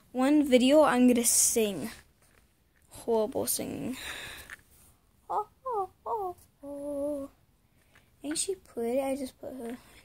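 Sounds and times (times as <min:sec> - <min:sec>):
girl humming: 0:05.3 - 0:07.4.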